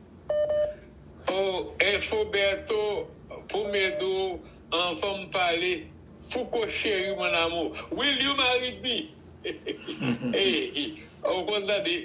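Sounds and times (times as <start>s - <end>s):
man speaking: 1.3s - 9.1s, 10.0s - 12.0s.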